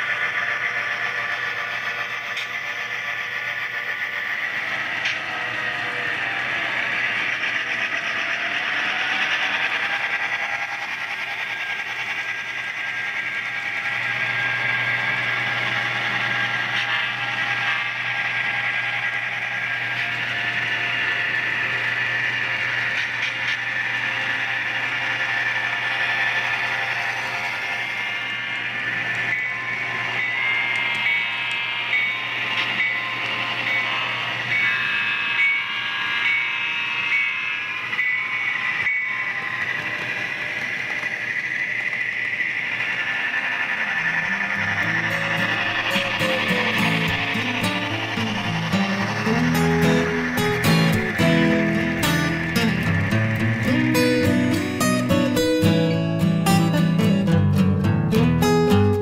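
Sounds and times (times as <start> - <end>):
model diesel engine sound: 39.4 - 59.0.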